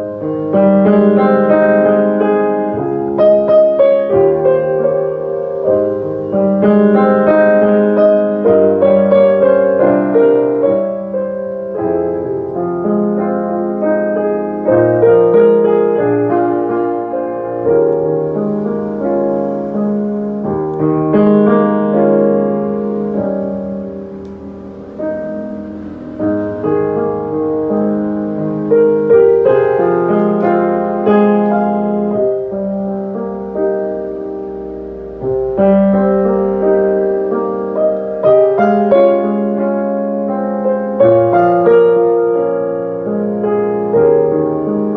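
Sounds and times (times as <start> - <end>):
grand piano playing: 0.0 - 44.9.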